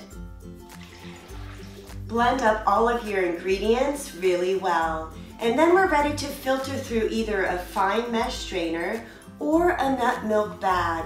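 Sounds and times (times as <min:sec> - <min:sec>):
soft background music: 0:00.0 - 0:11.0
liquid pouring into blender jar: 0:00.7 - 0:02.0.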